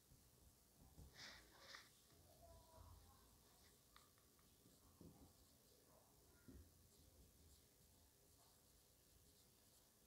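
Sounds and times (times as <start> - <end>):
marker pen writing on whiteboard: 3.6 - 10.0.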